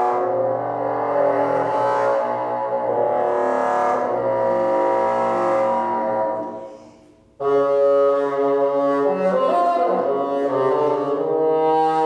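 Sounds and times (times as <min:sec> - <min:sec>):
solo bassoon held notes: 0:00.0 - 0:06.8, 0:07.4 - 0:12.0.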